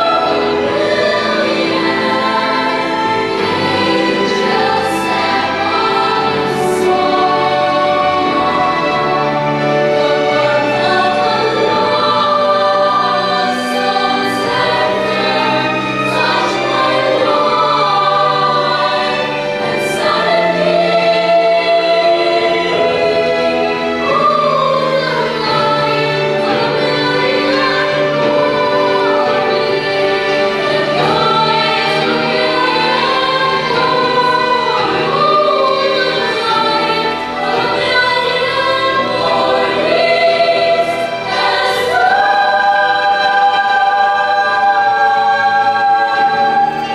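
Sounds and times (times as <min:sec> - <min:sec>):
children's choir singing: 0:00.0 - 0:46.9.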